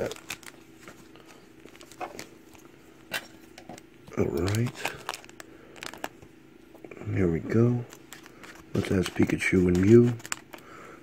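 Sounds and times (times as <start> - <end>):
foil card pack crinkling: 0.0 - 2.4, 4.1 - 6.2, 7.8 - 10.8.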